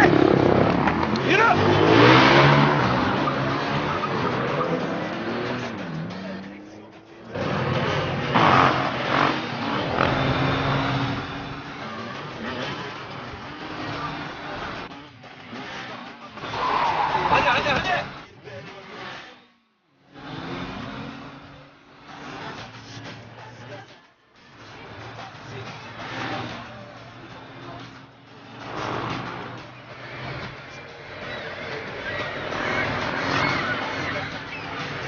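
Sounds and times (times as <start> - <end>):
car engine revving: 0.0 - 35.0
motorcycle engine revving: 0.0 - 35.0.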